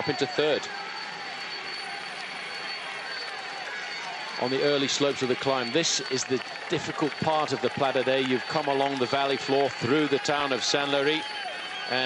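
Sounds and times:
race convoy engine noise: 0:00.0 - 0:12.0
roadside crowd: 0:00.0 - 0:12.0
thin steady high tone: 0:00.0 - 0:12.0.

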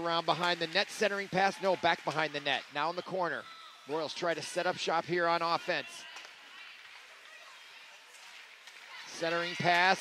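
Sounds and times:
murmur of spectators: 0:00.0 - 0:10.0.

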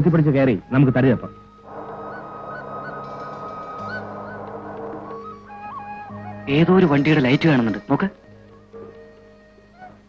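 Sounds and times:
film background music: 0:00.0 - 0:10.0
steady low drone: 0:01.6 - 0:06.5.

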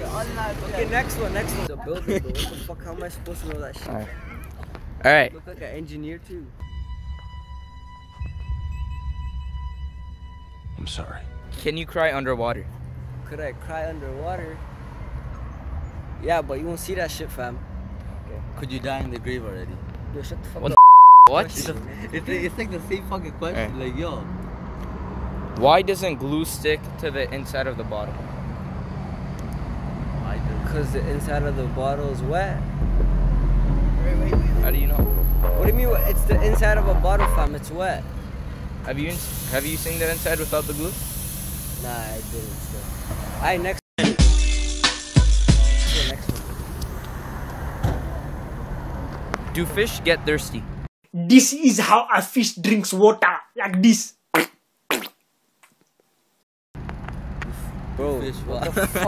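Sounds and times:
vehicle engine hum: 0:00.0 - 0:20.8, 0:21.4 - 0:43.8, 0:45.8 - 0:50.9, 0:56.8 - 0:59.0
road traffic rumble: 0:00.0 - 0:43.8, 0:45.7 - 0:50.9, 0:56.8 - 0:59.0
man making mouth noises: 0:53.8 - 0:55.2.

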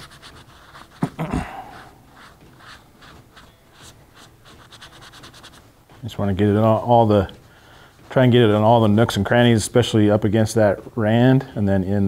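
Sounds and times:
foam pad rubbing leather boot: 0:00.0 - 0:07.1.

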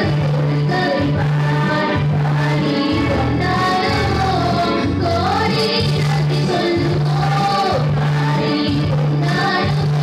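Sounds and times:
electronic keyboard bass notes: 0:00.0 - 0:10.0
women singing worship song: 0:00.0 - 0:10.0.

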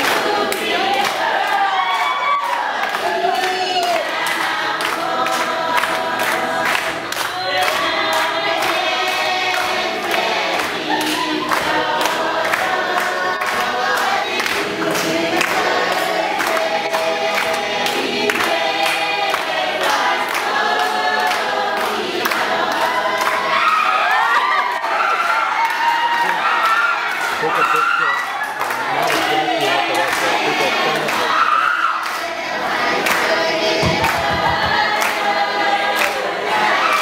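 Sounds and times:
hand claps: 0:00.0 - 0:23.4, 0:33.0 - 0:36.6
group of voices singing: 0:00.0 - 0:37.0.

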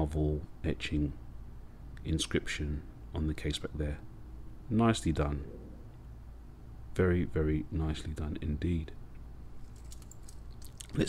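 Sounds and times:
low steady hum: 0:00.0 - 0:11.0
watch bracelet clicks and rustles: 0:09.6 - 0:11.0.

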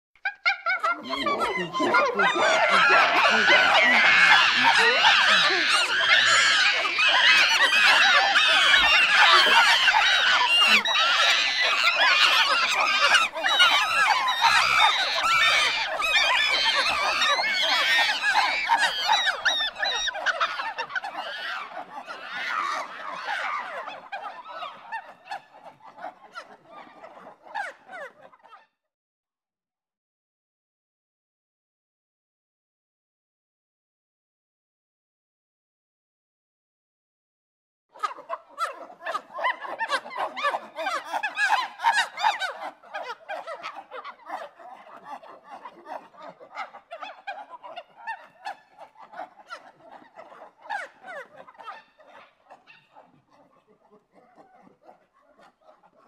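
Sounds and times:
shrieking chattering creature cries: 0:00.4 - 0:23.8.

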